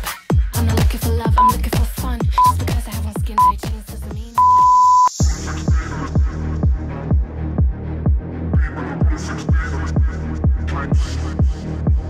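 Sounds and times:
interval timer beeps: 1.4s - 1.6s, 2.4s - 2.6s, 3.4s - 3.6s, 4.4s - 5.2s.

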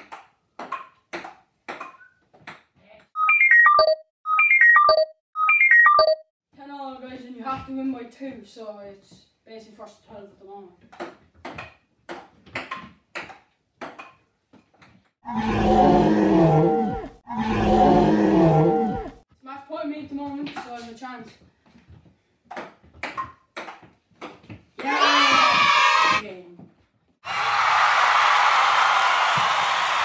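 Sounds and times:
loud roar-like calls: 15.3s - 19.2s.

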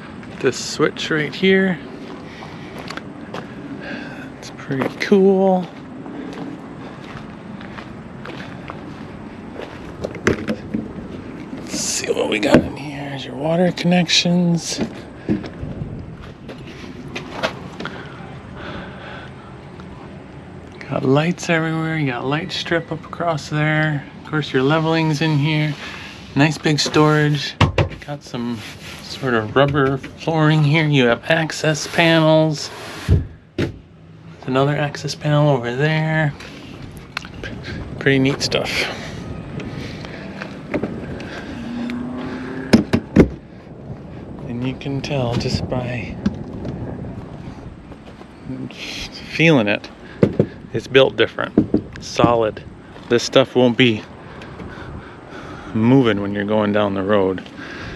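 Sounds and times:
low background rumble: 0.0s - 57.9s
outdoor background noise: 0.0s - 57.9s
sharp knocks on trailer wall: 27.6s - 28.0s, 33.0s - 33.8s, 42.7s - 43.4s, 50.2s - 50.5s.

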